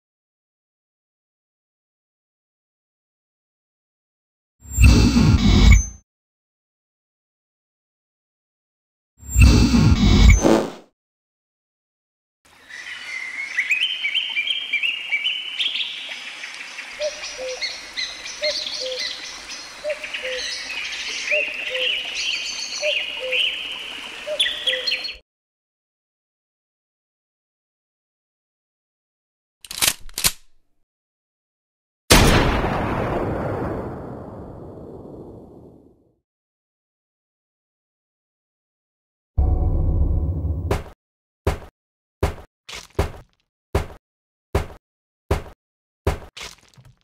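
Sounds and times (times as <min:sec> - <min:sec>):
birds chirping and calling: 0:12.7 - 0:25.2
deep rumbling sound effect: 0:39.4 - 0:40.9.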